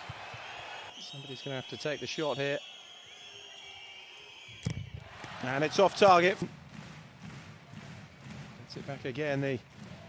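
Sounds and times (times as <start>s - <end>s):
faint arena crowd noise: 0.0s - 10.0s.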